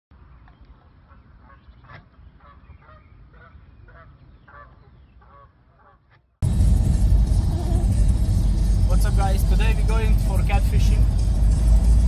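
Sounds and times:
geese honking: 1.1 - 6.2
low steady rumble: 6.4 - 12.0.

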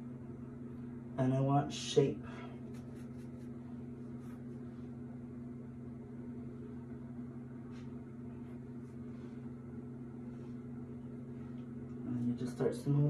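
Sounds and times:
steady low hum: 0.0 - 13.0
comb brushing hair: 2.6 - 5.1, 7.6 - 12.0.

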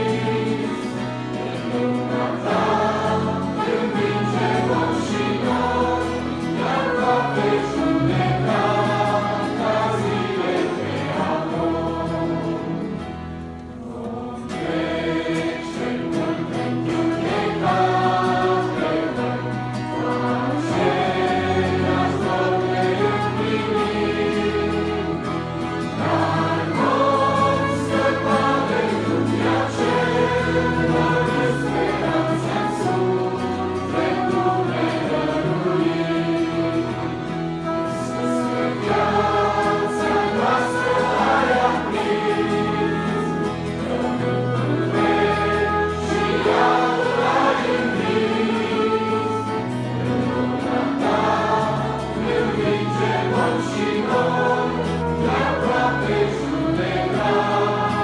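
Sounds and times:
choir singing a hymn: 0.0 - 58.0
band accompaniment: 14.8 - 58.0.

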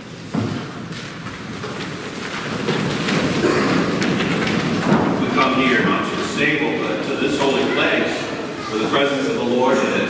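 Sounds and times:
people rising from pews rustling: 0.1 - 10.0.

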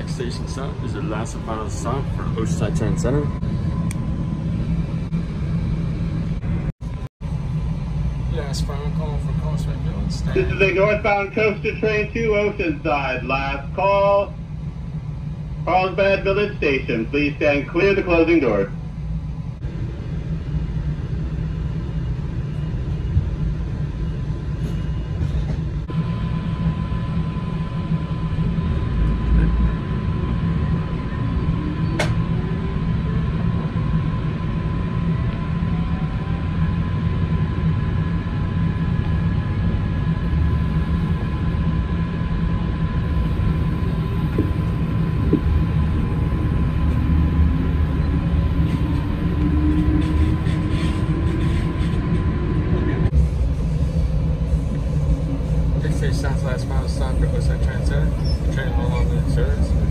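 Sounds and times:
train low rumble: 0.0 - 59.9.

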